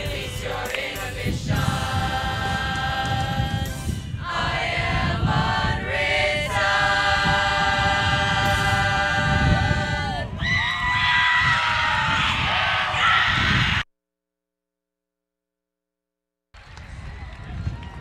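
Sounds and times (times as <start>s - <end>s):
mixed choir singing held chords: 0.0s - 10.4s.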